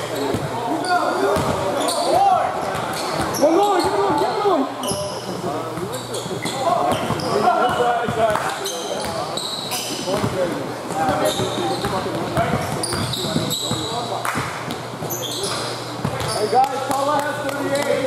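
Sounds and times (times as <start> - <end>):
basketball bouncing on court: 1.3 - 4.2, 5.7 - 9.2, 10.0 - 18.0.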